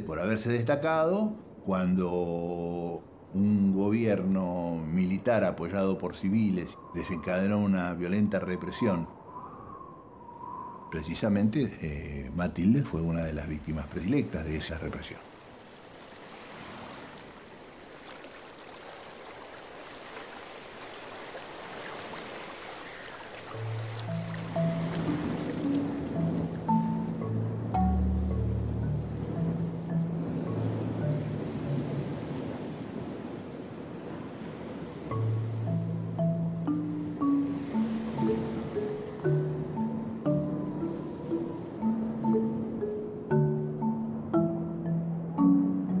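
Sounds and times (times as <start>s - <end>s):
sea waves: 0.0s - 46.0s
wind: 0.0s - 46.0s
slow instrumental music: 23.5s - 32.4s, 35.1s - 46.0s.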